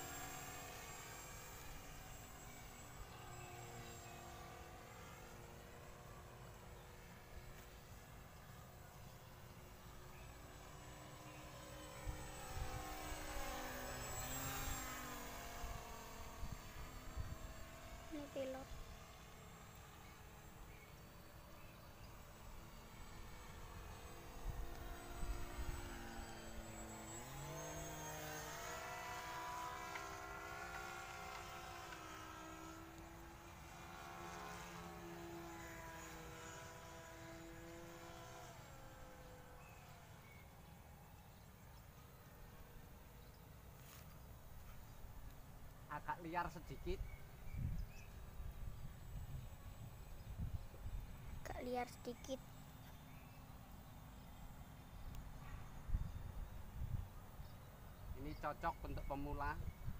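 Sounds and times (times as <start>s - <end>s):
model glider motor droning: 0.0s - 59.9s.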